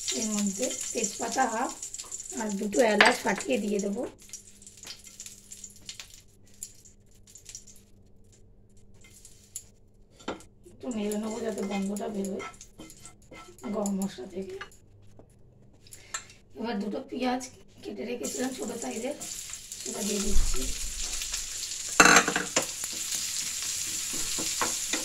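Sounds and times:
spices crackling in hot oil: 0.0s - 14.7s, 18.2s - 25.0s
woman speaking: 0.1s - 1.8s, 2.4s - 4.1s, 10.8s - 12.4s, 13.6s - 14.6s, 16.6s - 19.2s, 19.9s - 20.8s.

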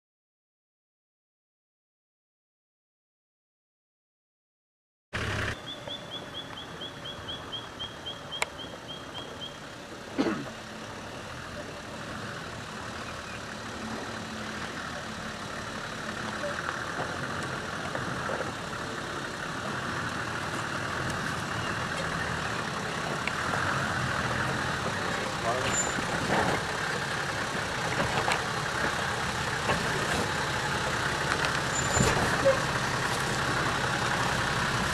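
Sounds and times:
off-road vehicle engine crawling: 5.2s - 34.9s
bird chirping rapidly: 5.6s - 9.6s.

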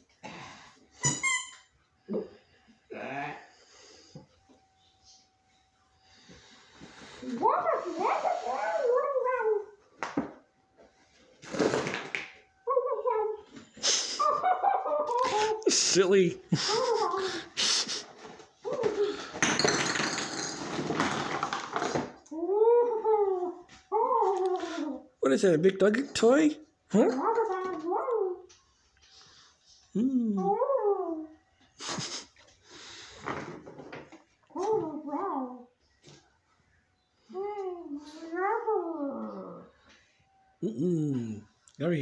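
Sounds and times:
person whining like a dog: 7.2s - 9.8s, 12.7s - 15.9s, 16.5s - 19.3s, 22.3s - 25.2s, 26.9s - 28.5s, 29.9s - 32.3s, 34.5s - 35.7s, 37.2s - 39.8s, 40.6s - 41.4s
person's short vocal sound: 40.6s - 41.5s.

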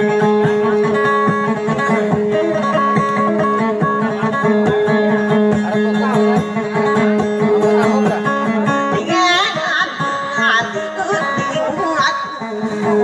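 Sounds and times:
plucked lute notes: 0.0s - 13.0s.

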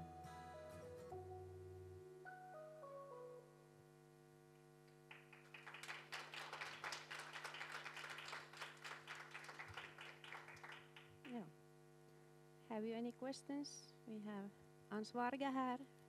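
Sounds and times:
steady electrical hum: 0.0s - 16.0s
small audience applauding: 4.9s - 11.4s.

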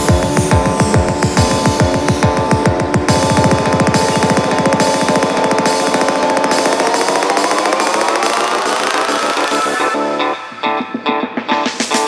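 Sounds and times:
pulsing synth pattern: 0.0s - 10.2s
psytrance music: 0.0s - 12.0s.

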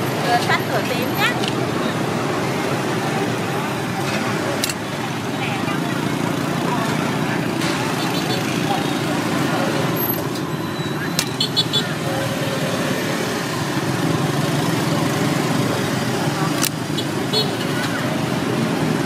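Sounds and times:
street traffic rumble: 0.0s - 19.0s
sharp clicks: 4.6s - 4.9s, 11.1s - 11.4s, 16.5s - 16.8s.

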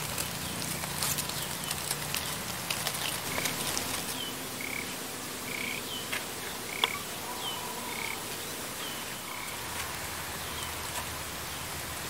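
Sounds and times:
field ambience hiss: 0.0s - 12.0s
frogs calling: 3.3s - 5.9s, 6.7s - 8.2s.

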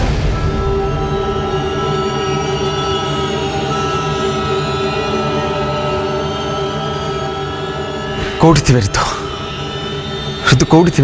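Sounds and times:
held synthesizer chords: 0.0s - 11.0s.

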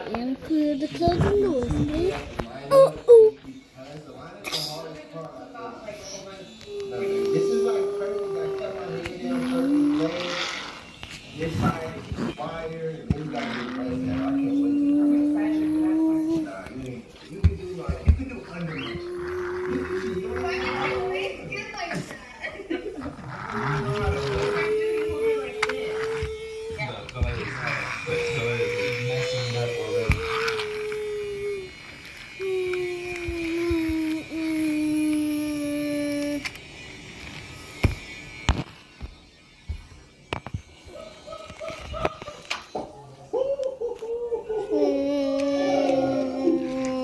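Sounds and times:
person humming long notes: 6.6s - 10.3s, 13.8s - 16.6s, 18.9s - 21.2s, 32.4s - 36.5s.

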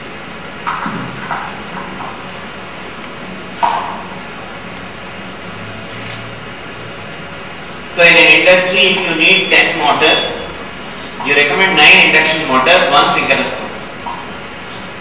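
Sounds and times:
room tone hiss: 0.0s - 15.0s.

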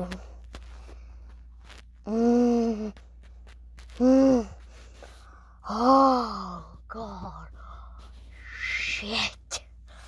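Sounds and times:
low steady hum: 0.0s - 10.0s
child whispering: 3.9s - 4.7s, 5.6s - 10.0s.

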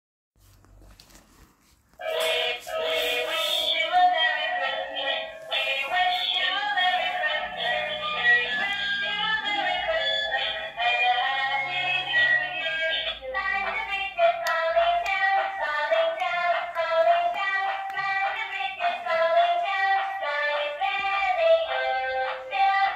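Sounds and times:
toy speaker playing sung song: 2.0s - 22.9s.

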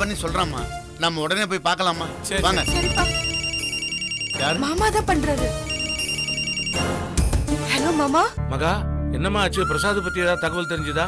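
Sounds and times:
mobile phone ringing: 2.6s - 7.1s.

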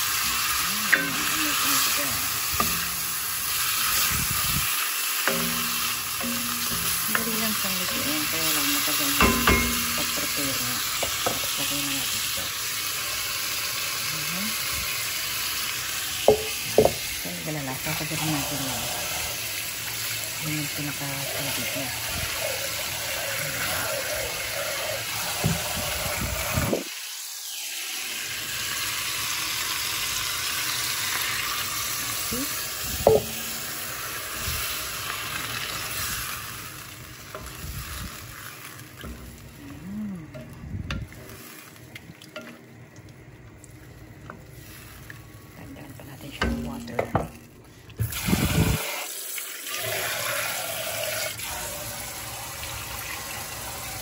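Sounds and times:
tap water running into a pot: 0.0s - 39.7s, 40.3s - 45.6s, 46.3s - 54.0s
ladle stirring in a pot: 0.1s - 13.7s, 16.2s - 17.2s, 17.8s - 25.9s, 33.0s - 45.6s
ladle clinking on pot: 0.9s - 1.9s, 2.5s - 3.4s, 5.3s - 8.2s, 8.8s - 11.6s, 16.3s - 17.0s, 33.1s - 33.7s.

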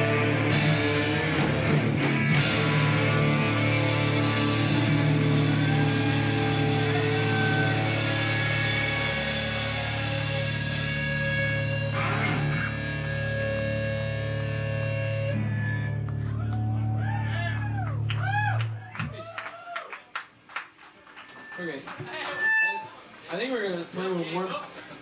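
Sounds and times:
drums and cymbals: 0.0s - 11.9s
electric guitars and bass droning: 0.0s - 19.1s.

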